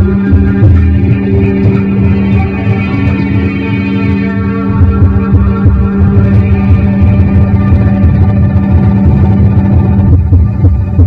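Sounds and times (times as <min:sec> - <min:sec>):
heavy fluctuating low bass: 0:00.0 - 0:11.0
layered electronic drone: 0:00.0 - 0:11.0.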